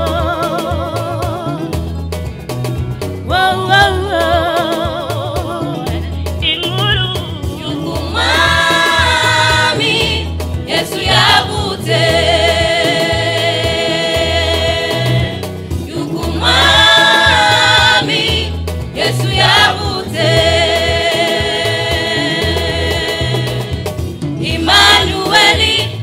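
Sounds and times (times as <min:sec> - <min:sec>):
gospel choir singing: 0:00.0 - 0:01.7, 0:03.2 - 0:06.1, 0:07.4 - 0:26.0
amplified backing with bass line: 0:00.0 - 0:26.0.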